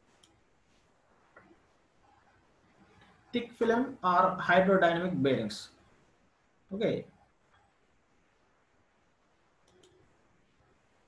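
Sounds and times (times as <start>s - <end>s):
computer mouse clicks: 9.6s - 10.2s.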